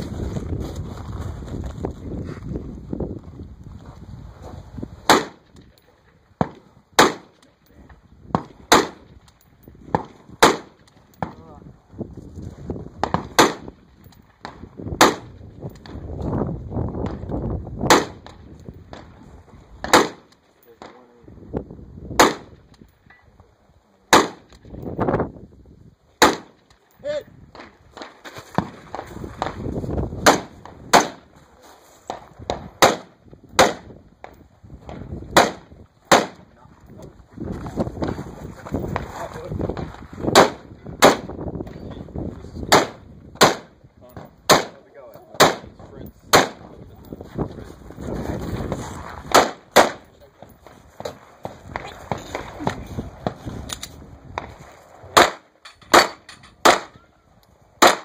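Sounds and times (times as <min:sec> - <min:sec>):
gunshots: 0:05.0 - 0:05.6, 0:06.4 - 0:07.4, 0:08.3 - 0:09.1, 0:09.9 - 0:11.4, 0:13.0 - 0:13.8, 0:14.4 - 0:15.4, 0:17.8 - 0:19.1, 0:19.8 - 0:21.0, 0:22.2 - 0:22.6, 0:24.1 - 0:24.6, 0:26.2 - 0:26.6, 0:30.2 - 0:31.3, 0:32.1 - 0:34.0, 0:34.9 - 0:36.5, 0:40.3 - 0:41.4, 0:42.6 - 0:46.7, 0:49.2 - 0:50.1, 0:54.4 - 0:57.0, 0:57.8 - 0:58.0.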